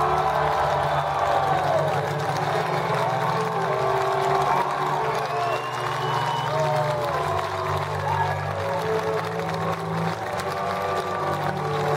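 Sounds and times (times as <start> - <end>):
audience applause and cheering: 0.0 - 11.9.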